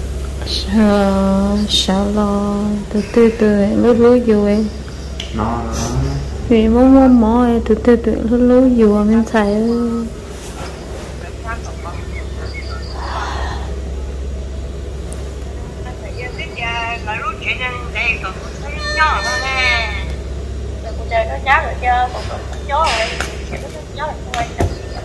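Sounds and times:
steady low hum: 0.0s - 25.0s
faint voices speaking: 0.4s - 13.8s, 15.6s - 25.0s.

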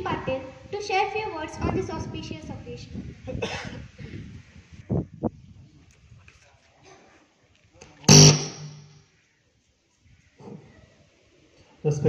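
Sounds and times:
loudspeaker microphone burst: 8.1s - 8.8s
low hum: 8.1s - 8.9s.

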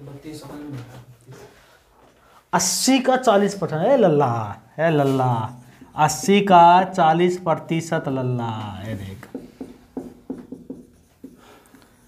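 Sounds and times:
marker writing on whiteboard: 8.5s - 12.0s.

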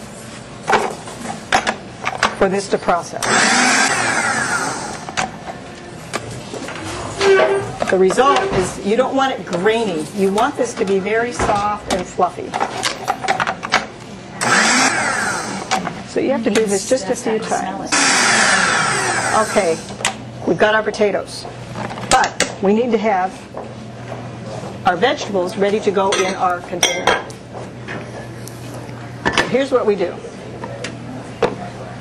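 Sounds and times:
food processor motor whine: 3.2s - 5.2s, 14.4s - 15.8s, 17.9s - 20.0s.

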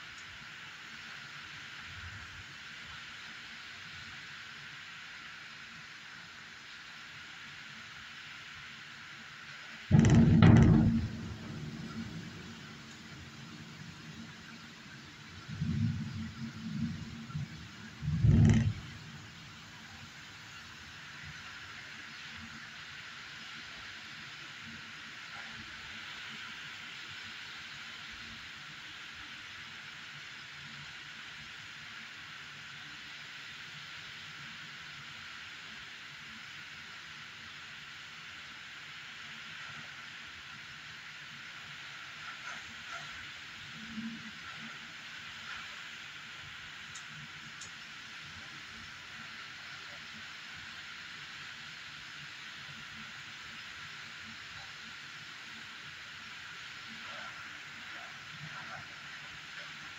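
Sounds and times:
heavy rain falling: 8.7s - 28.4s, 39.3s - 50.8s.

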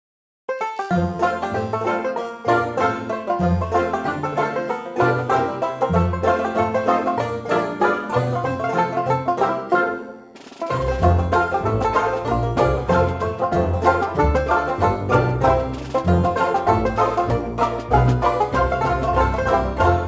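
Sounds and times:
plucked-string instrumental music: 0.5s - 20.0s.

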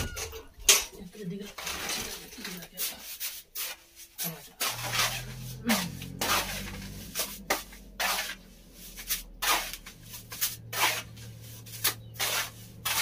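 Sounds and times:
tool scraping plaster: 1.6s - 13.0s
low hum: 4.6s - 13.0s.

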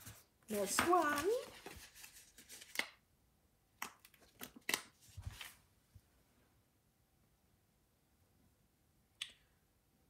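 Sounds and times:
paper sheets rustling and crinkling: 0.0s - 3.0s, 4.0s - 5.6s.

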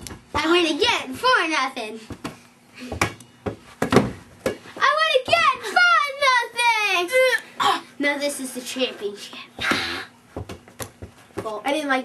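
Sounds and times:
rubber ball bouncing on hard floor: 2.1s - 4.6s, 9.6s - 11.6s.

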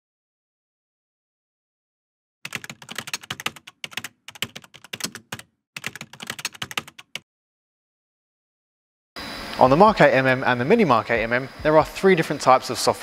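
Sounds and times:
keyboard typing clicks: 2.5s - 7.2s.

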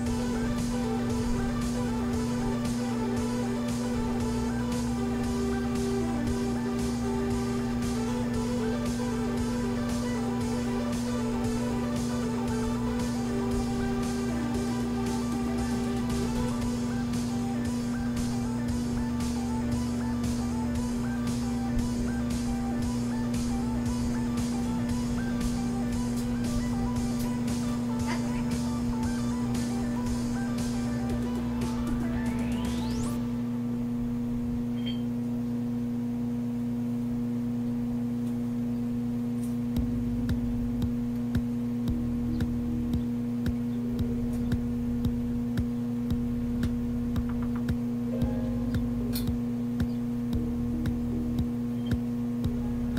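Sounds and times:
background music: 0.0s - 34.3s, 39.8s - 52.9s
microwave oven hum: 0.0s - 52.9s.

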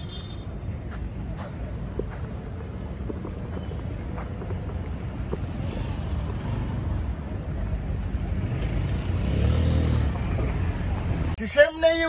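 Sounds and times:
road traffic rumble: 0.0s - 12.0s
vehicle engine passing close: 5.4s - 11.4s.

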